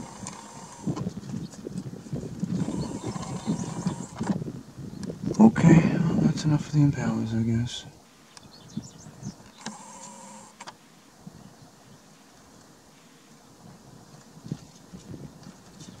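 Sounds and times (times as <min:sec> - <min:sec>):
camera lens zoom motor whine: 0:00.0 - 0:01.1, 0:02.4 - 0:04.4, 0:09.2 - 0:10.8
faint ticks and rustles: 0:11.8 - 0:16.0.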